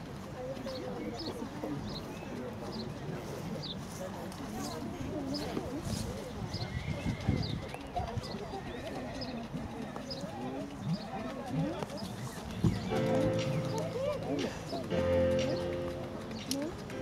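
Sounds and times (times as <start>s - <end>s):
indistinct background voices: 0.4s - 17.0s
horse hoofbeats on gravel: 5.9s - 17.0s
music with long held notes: 12.9s - 17.0s.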